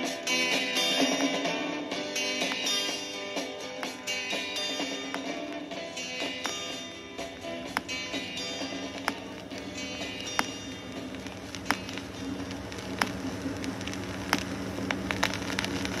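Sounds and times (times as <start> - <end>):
vinyl surface crackle: 0.2 - 16.0
steady low hum: 1.7 - 16.0
turntable stylus clicking: 2.4 - 3.0, 3.7 - 16.0.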